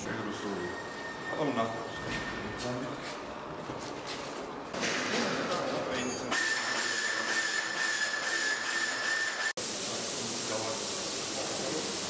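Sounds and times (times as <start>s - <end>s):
compressed air hissing: 9.6s - 12.0s.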